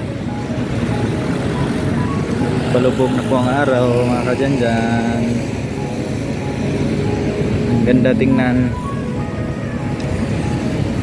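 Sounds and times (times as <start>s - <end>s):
faint steady tones: 0.0s - 11.0s
low outdoor rumble: 0.0s - 11.0s.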